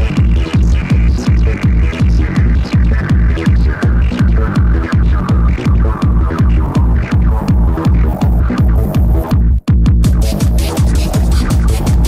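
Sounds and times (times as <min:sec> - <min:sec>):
acid synth line: 0:00.0 - 0:12.0
fast heavy kick drum: 0:00.0 - 0:12.0.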